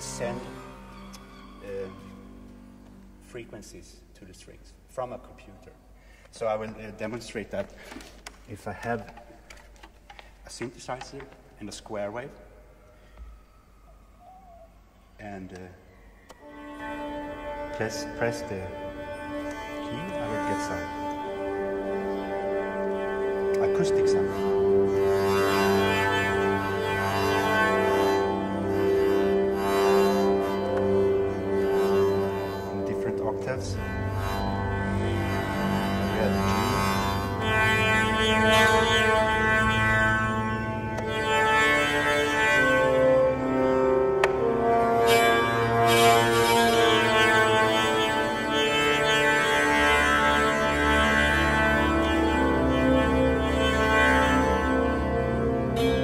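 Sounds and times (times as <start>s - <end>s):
buzzy double bass drone: 0.0s - 3.2s, 16.4s - 56.0s
sympathetic strings ringing: 0.0s - 4.5s, 14.8s - 56.0s.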